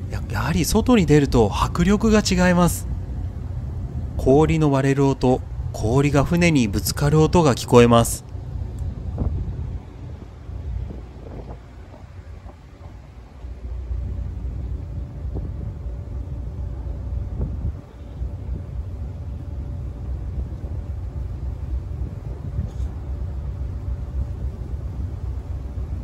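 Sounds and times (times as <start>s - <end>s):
low rumble: 0.0s - 26.0s
wind on microphone: 8.4s - 19.6s, 20.2s - 23.3s.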